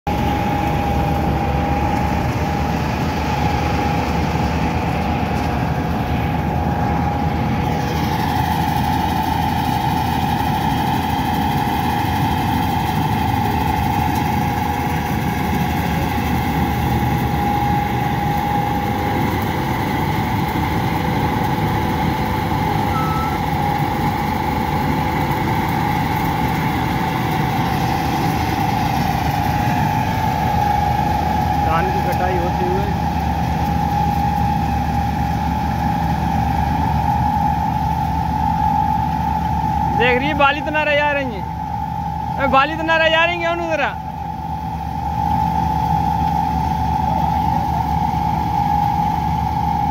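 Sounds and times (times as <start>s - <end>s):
combine harvester running: 0.1s - 49.9s
machine whine: 0.1s - 49.9s.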